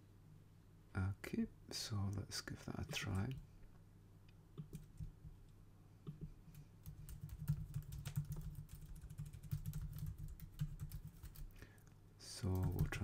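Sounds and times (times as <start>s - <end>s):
typing on computer keyboard: 4.6s - 5.2s, 6.2s - 11.5s, 12.5s - 13.0s.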